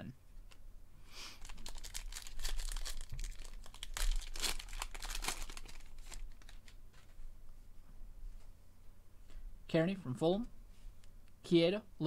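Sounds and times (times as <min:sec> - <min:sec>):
foil wrapper tearing and crinkling: 0:01.4 - 0:06.8.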